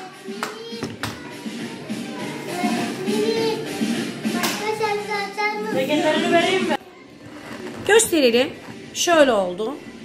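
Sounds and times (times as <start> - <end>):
faint music: 0.0 - 10.0.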